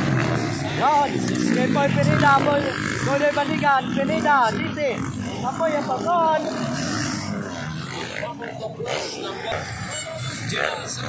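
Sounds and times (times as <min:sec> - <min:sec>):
crowd voices: 0:00.0 - 0:11.0
dirt bike engines revving: 0:00.0 - 0:11.0.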